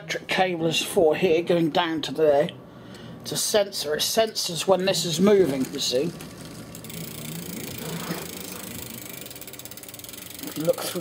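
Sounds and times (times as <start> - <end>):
bike freewheel ticking: 5.5 - 11.0.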